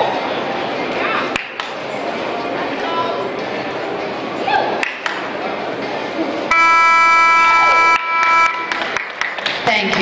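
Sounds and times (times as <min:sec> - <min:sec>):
arena buzzer horn blast: 0:06.5 - 0:08.8.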